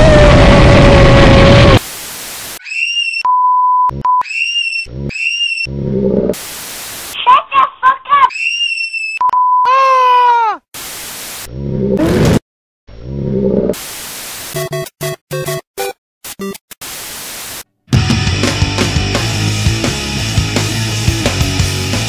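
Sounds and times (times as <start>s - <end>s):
tv static hiss: 1.8s - 2.6s, 6.4s - 7.2s, 10.8s - 11.5s, 16.8s - 17.6s
short high-pitched cries: 7.2s - 10.6s
long cry falling in pitch: 9.7s - 10.6s.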